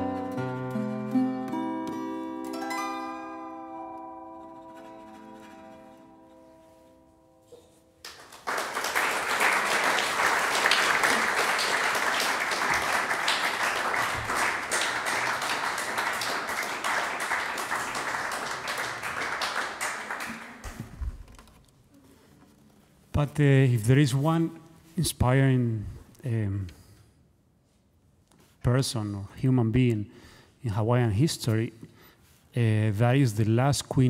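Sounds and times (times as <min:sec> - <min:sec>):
lap steel guitar ringing: 0:00.0 - 0:08.0
audience applause: 0:08.0 - 0:20.9.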